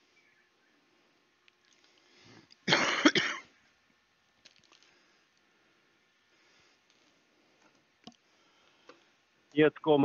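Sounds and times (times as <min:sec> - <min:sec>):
person coughing: 0:02.7 - 0:03.5.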